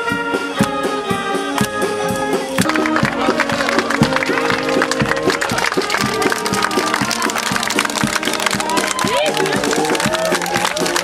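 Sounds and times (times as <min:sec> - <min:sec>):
live band music: 0:00.0 - 0:11.0
crowd clapping along: 0:02.4 - 0:11.0.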